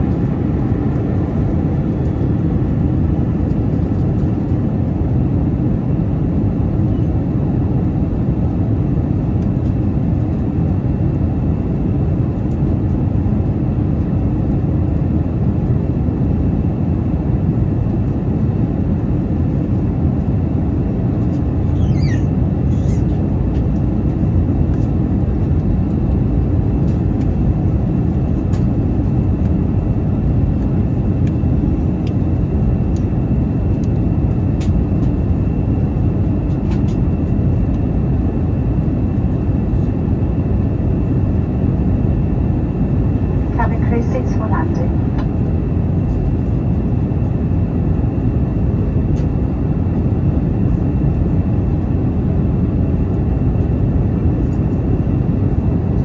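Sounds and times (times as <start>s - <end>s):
aircraft cabin engine rush: 0.0s - 56.0s
short squeak: 21.7s - 23.1s.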